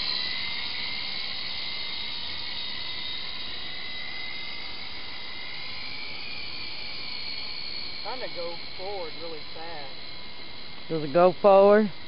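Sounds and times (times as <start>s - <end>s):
toy helicopter rotors whining: 0.0s - 12.0s.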